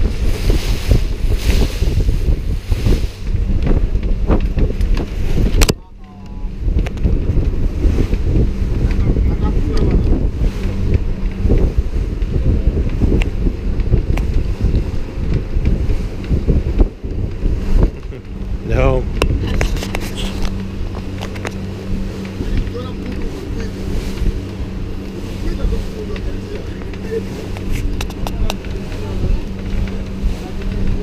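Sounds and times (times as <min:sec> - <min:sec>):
boat engine running: 0:00.0 - 0:31.0
wind buffeting microphone: 0:00.0 - 0:31.0.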